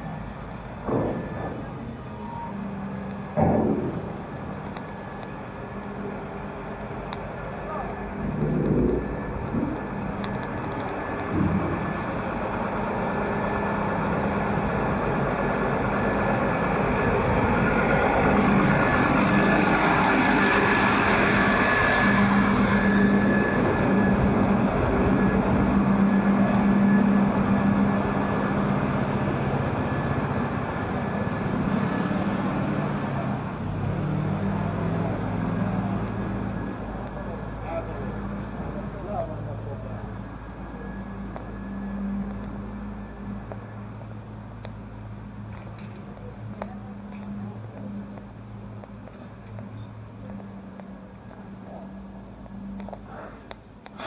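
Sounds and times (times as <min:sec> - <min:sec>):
street noise: 0:00.0 - 0:54.0
vehicle engine running: 0:02.7 - 0:54.0
passing voices: 0:07.4 - 0:12.4.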